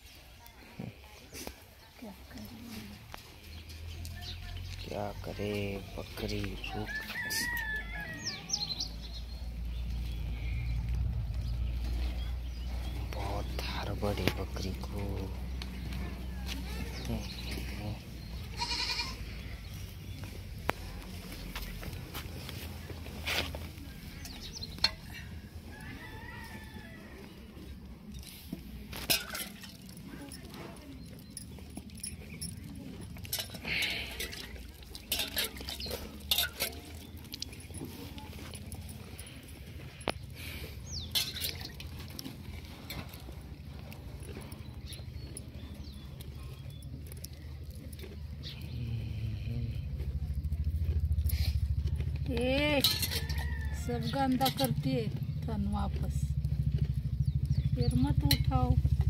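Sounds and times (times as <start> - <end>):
goats bleating: 18.4 - 19.6.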